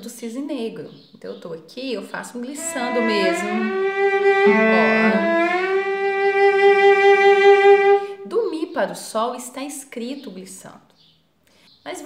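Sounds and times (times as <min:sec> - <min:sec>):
bowed cello glissando: 0:02.5 - 0:08.2.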